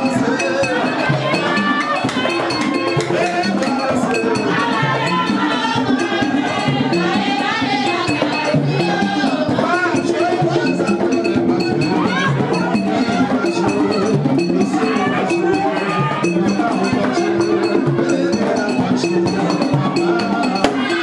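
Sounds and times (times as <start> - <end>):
drums: 0.0 - 21.0
people singing: 0.0 - 21.0
struck percussion beat: 0.0 - 21.0.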